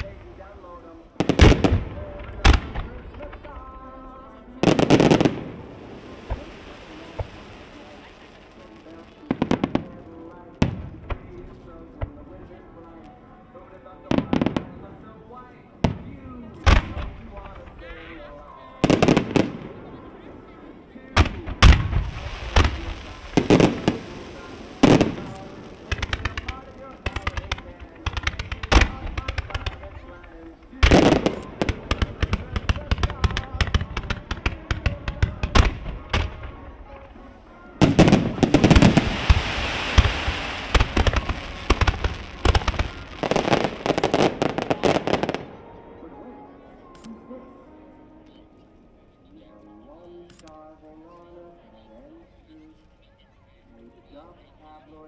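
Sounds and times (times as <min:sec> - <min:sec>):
firework crackling: 0:00.0 - 0:12.2, 0:21.2 - 0:45.5
faint music: 0:00.0 - 0:55.0.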